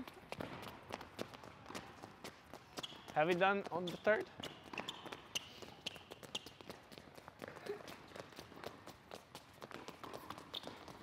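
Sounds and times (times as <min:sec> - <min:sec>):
quick footfalls on indoor court: 0:00.0 - 0:11.0.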